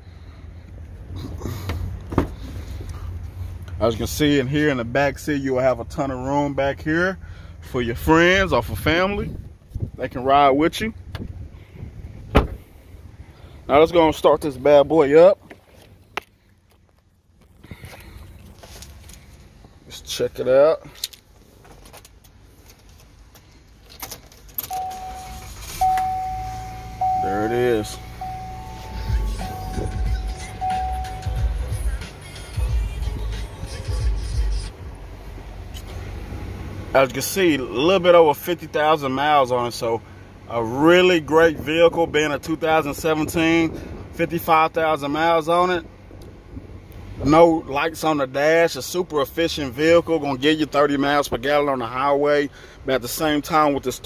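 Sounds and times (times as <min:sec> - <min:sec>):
car engine starting and idling: 0:00.0 - 0:54.0
low steady rumble: 0:00.0 - 0:54.0
car door latch click: 0:12.3 - 0:12.6
steady high tone: 0:24.7 - 0:34.2.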